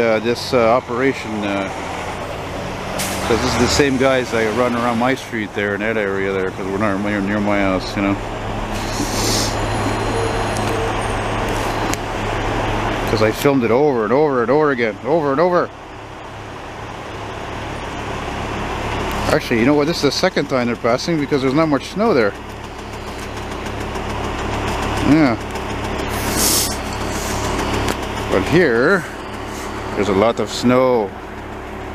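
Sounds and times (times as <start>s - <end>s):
diesel engines running: 0.0s - 31.9s
short hiss: 26.1s - 27.5s.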